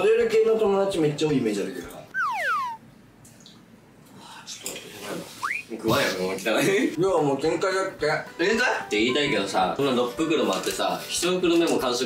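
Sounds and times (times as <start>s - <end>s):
descending whistle sound effect: 2.1s - 2.8s, 5.4s - 5.7s.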